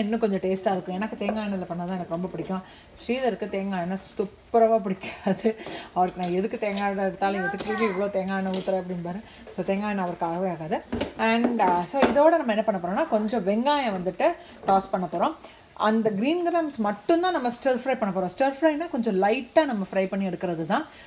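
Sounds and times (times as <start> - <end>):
woman talking: 0.0 - 20.9
faint sizzle of frying in oil: 0.0 - 21.0.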